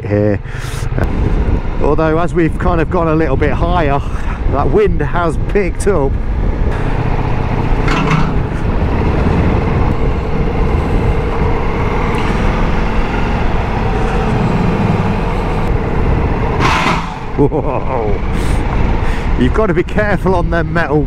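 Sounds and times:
wind buffeting microphone: 0.4 - 21.0
motorcycle engine running low: 6.0 - 19.1.

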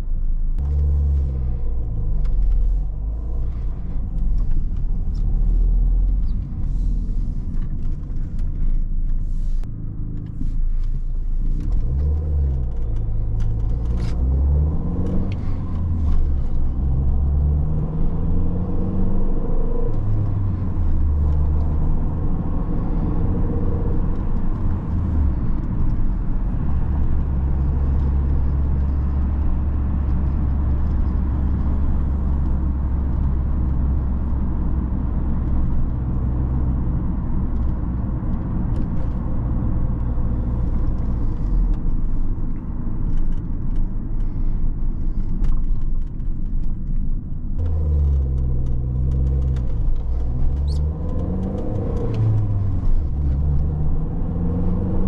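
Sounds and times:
car engine accelerating: 0.0 - 55.0.

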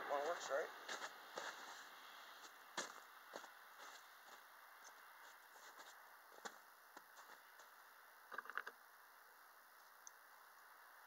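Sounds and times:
soft crunches: 0.9 - 6.6
faint clicks: 9.8 - 10.7.

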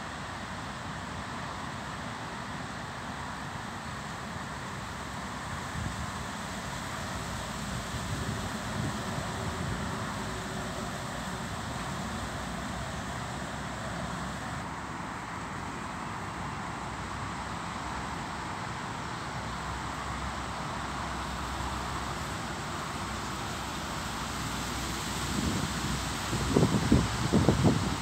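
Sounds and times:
distant city traffic: 0.0 - 28.0
wind buffeting microphone: 25.4 - 28.0.

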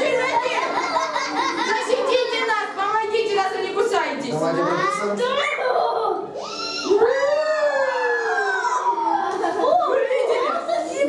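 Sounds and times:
children's wavering cries: 5.7 - 9.9.

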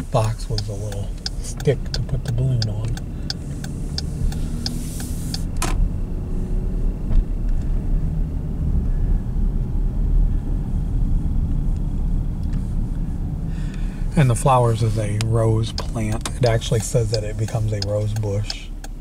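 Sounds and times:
car rumble from inside cabin: 0.0 - 19.0
faint ticks: 0.2 - 5.5, 15.2 - 19.0.

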